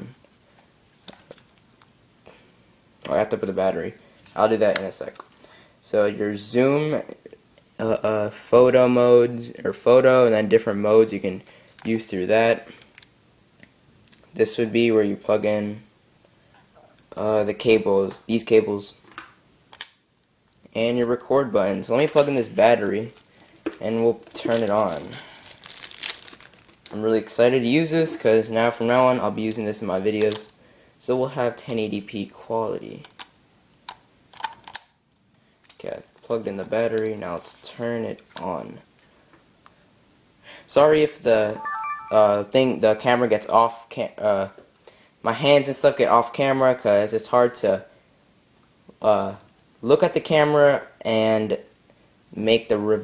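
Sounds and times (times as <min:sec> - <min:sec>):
plastic packaging crinkling: 0:23.0 - 0:27.0.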